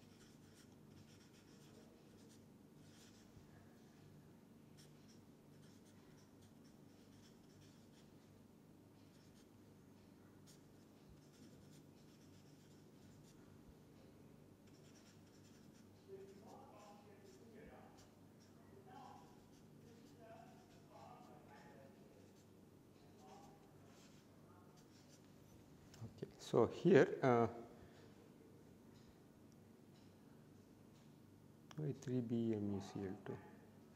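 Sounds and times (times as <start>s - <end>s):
marker scratching on paper: 0.0s - 3.4s, 4.8s - 8.2s, 9.0s - 9.5s, 10.4s - 13.4s, 14.6s - 25.3s.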